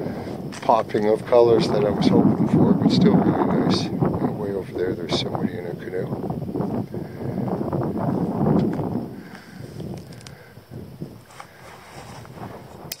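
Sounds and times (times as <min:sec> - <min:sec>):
wind buffeting microphone: 0:00.0 - 0:13.0
small clicks: 0:09.8 - 0:10.4.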